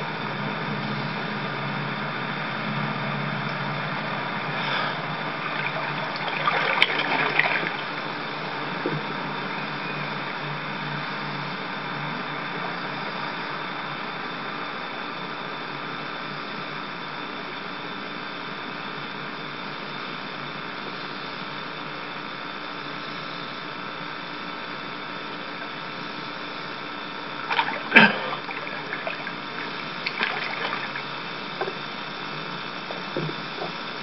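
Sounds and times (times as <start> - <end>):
steady hiss: 0.0 - 17.8, 18.8 - 34.0
faint hum tones: 0.0 - 34.0.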